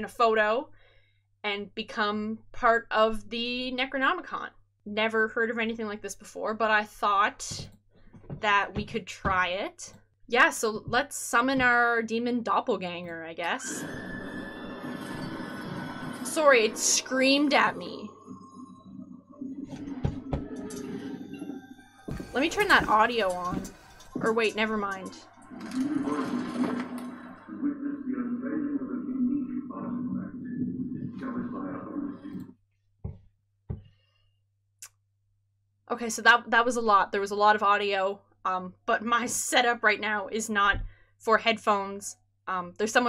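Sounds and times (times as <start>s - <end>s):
soft low thumps: 10.6s - 12.0s
eerie noisy soundscape: 13.5s - 32.4s
scream: 13.6s - 18.8s
music: 15.0s - 26.9s
voice reciting: 16.3s - 18.1s, 22.4s - 32.5s.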